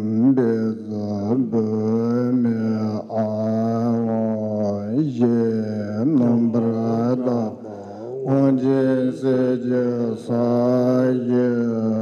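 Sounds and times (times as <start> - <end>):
man chanting low notes: 0.0 - 12.0.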